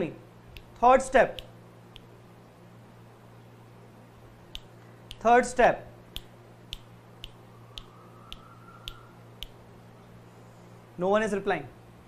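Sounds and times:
steady low hum: 0:00.0 - 0:12.0
faint sharp clicks: 0:04.5 - 0:05.2, 0:06.2 - 0:09.6.

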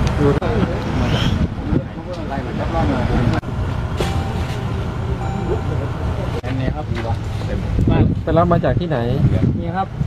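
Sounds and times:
people talking indistinctly: 0:00.2 - 0:10.0.

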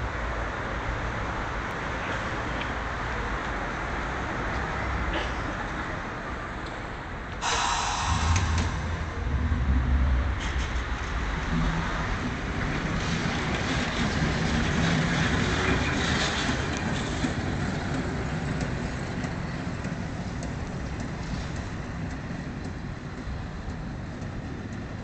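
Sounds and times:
tram rolling on rails: 0:00.0 - 0:25.0.

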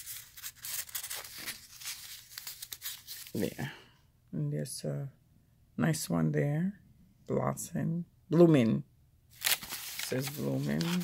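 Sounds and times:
paper rustling and scraping: 0:00.0 - 0:03.7, 0:09.4 - 0:11.0.

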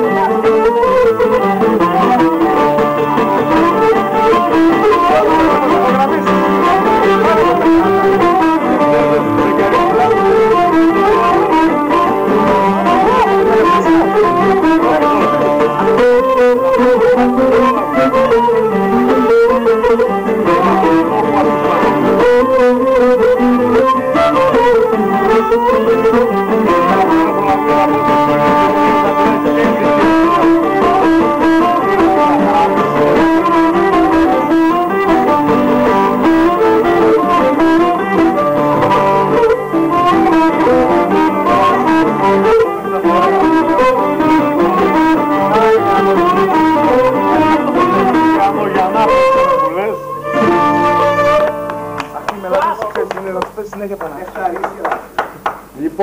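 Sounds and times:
acoustic guitar accompaniment: 0:00.0 - 0:56.0
bowed lyra melody: 0:00.8 - 0:52.4.

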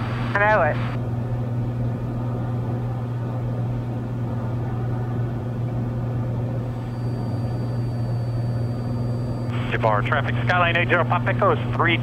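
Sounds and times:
airplane engine droning in cabin: 0:00.0 - 0:12.0.

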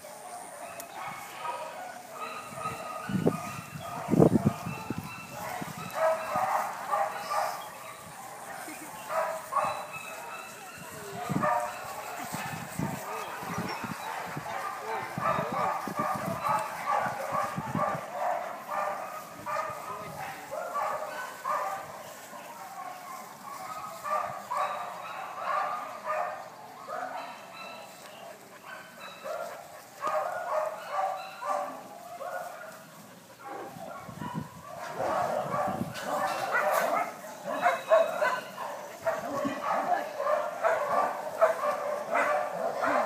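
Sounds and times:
dogs barking and yipping: 0:00.0 - 0:43.0.

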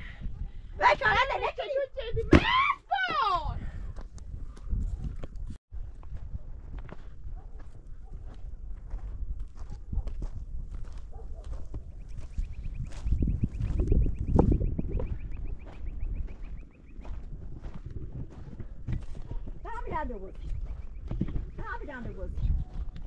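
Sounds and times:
wind rumble on microphone: 0:00.0 - 0:02.6, 0:03.4 - 0:23.0
footsteps crunching on gravel: 0:06.0 - 0:23.0.

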